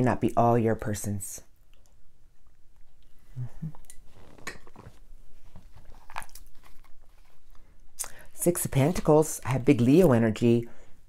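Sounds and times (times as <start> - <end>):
cards shuffling: 4.1 - 7.7, 8.6 - 10.1.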